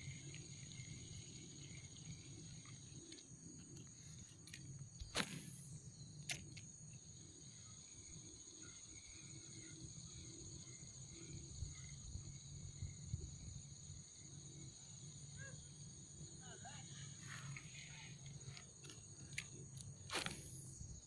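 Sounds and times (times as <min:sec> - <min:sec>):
high-pitched insect drone: 0:00.0 - 0:21.0.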